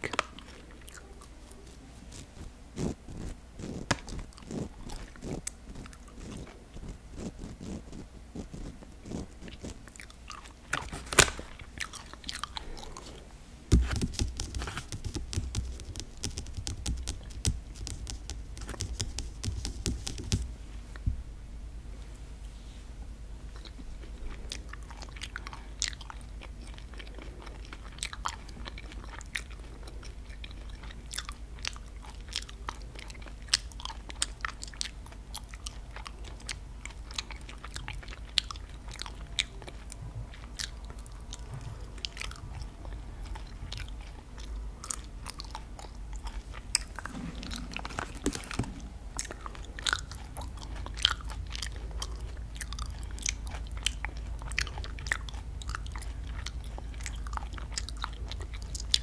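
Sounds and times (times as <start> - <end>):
chewing and mouth clicks: 0.0 - 13.2, 13.8 - 21.0, 23.5 - 59.0.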